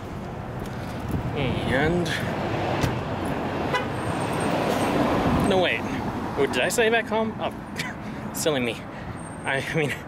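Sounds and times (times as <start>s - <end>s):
wind rumbling on microphone: 0.0s - 3.5s
road traffic passing: 0.0s - 10.0s.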